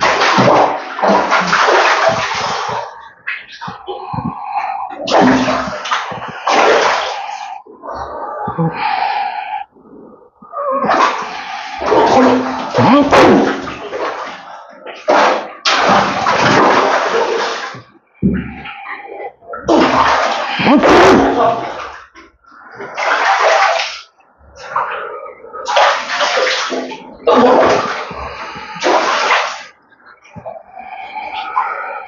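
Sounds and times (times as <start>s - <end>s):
water splashing in a tub: 0.0s - 32.0s.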